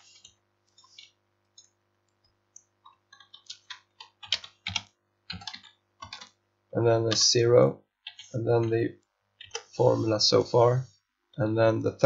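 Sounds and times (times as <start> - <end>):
typing on computer keyboard: 2.9 - 6.4, 8.0 - 8.4.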